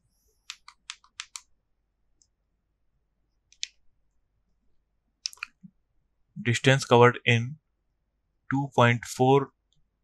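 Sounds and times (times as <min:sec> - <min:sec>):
computer mouse clicks: 0:00.4 - 0:01.5, 0:03.5 - 0:03.8, 0:05.2 - 0:05.7.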